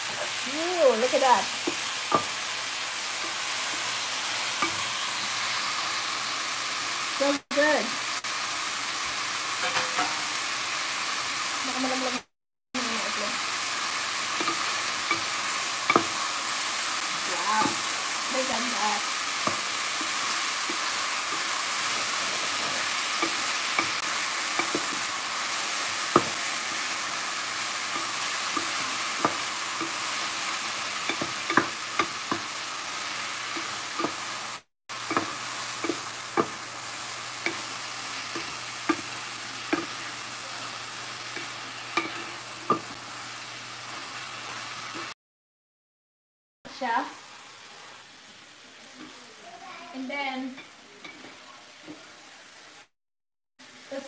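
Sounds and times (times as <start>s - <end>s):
vegetables sizzling in a frying pan: 0.0s - 45.2s, 46.7s - 52.9s, 53.6s - 54.0s.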